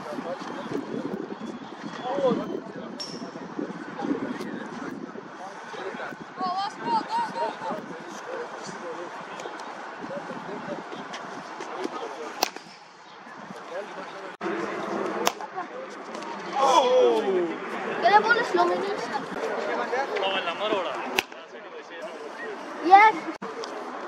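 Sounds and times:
cricket bat striking ball: 12.4 - 12.9.

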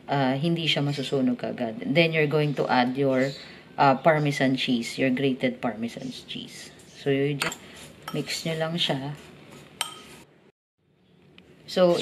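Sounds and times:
spoon clinking against bowl: 9.8 - 10.1.

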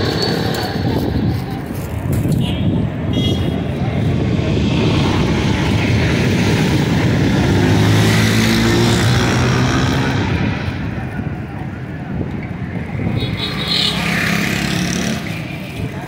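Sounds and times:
street traffic: 0.0 - 16.0.

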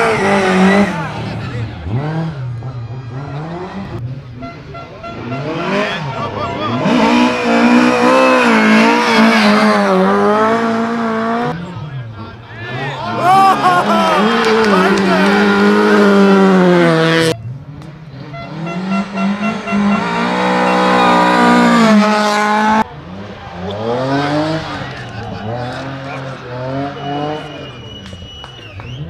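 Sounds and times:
rally car engines revving past: 0.0 - 29.0.

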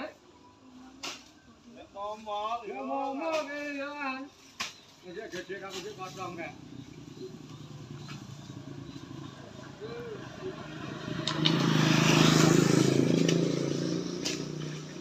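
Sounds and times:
vehicle passing by: 5.9 - 15.0.

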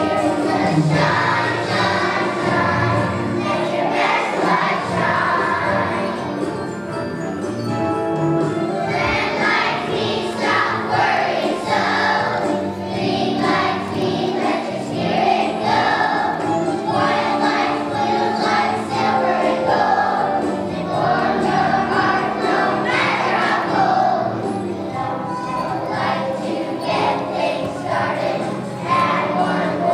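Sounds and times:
children's choir singing: 0.0 - 7.4, 8.6 - 29.9.

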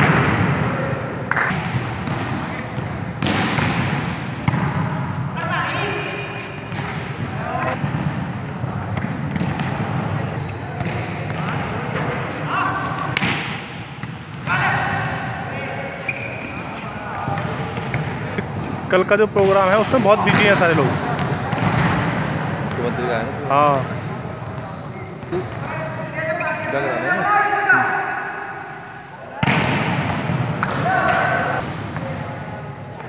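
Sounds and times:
echoing indoor hall noise: 0.0 - 33.0
volleyball being hit: 1.3 - 5.1, 6.5 - 10.1, 20.2 - 22.8, 29.4 - 32.2
volleyball smack: 3.2 - 4.9, 29.4 - 32.1
players calling: 30.3 - 31.6.

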